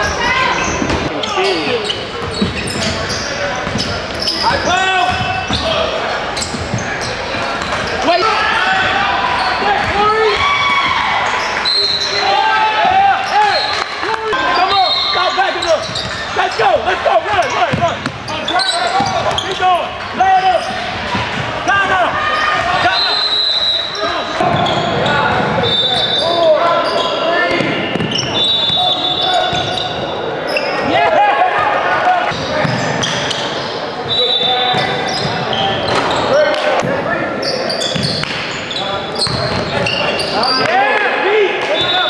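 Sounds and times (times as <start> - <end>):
sneaker squeaks: 0.0 - 8.2, 9.3 - 21.4, 22.2 - 30.9, 32.3 - 40.8
players shouting: 0.0 - 42.0
basketball bouncing: 3.6 - 3.9, 5.0 - 5.6, 27.6 - 28.3.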